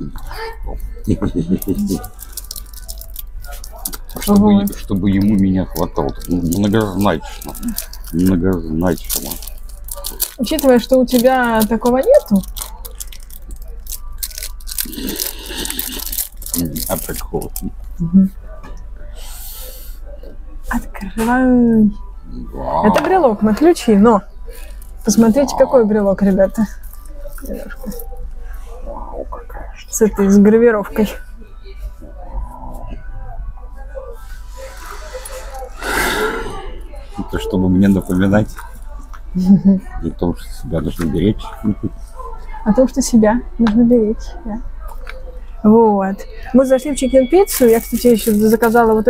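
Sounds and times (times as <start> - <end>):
low indistinct voices: 0.0 - 49.0
low steady hum: 0.0 - 49.0
breathy vocal sound: 14.8 - 16.1, 34.5 - 37.0.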